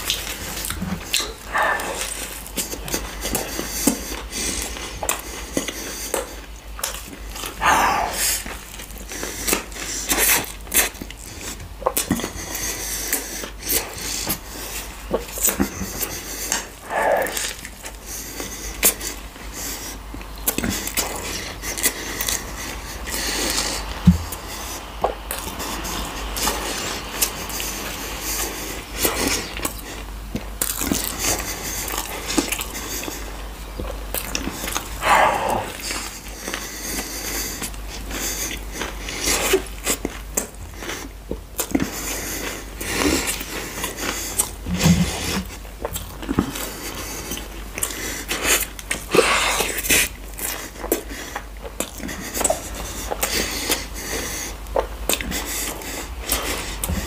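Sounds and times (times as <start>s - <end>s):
chewing and biting food: 0.0s - 57.0s.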